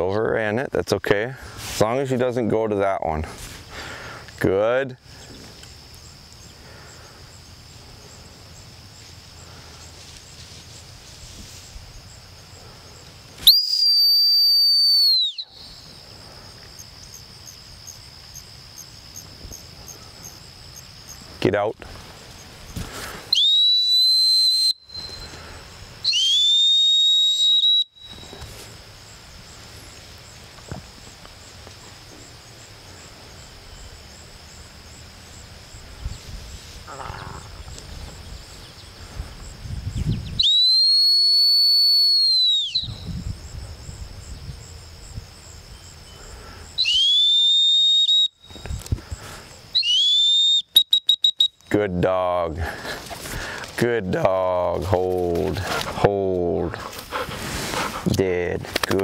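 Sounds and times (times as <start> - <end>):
faint insect chirping: 0.0 - 59.0
dog training whistle blasts: 13.4 - 15.5, 23.3 - 25.3, 26.0 - 28.3, 40.4 - 42.9, 46.8 - 48.4, 49.8 - 51.7.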